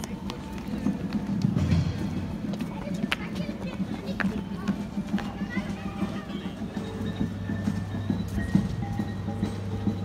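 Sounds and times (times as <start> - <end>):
faint background music: 0.0 - 10.0
footsteps on paving stones: 0.0 - 10.0.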